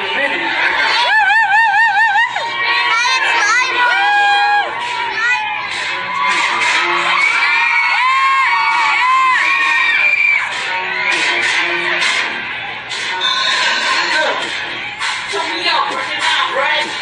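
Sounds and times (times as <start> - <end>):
audience cheering and screaming: 0.0 - 15.3
hip-hop beat over pa: 2.4 - 17.0.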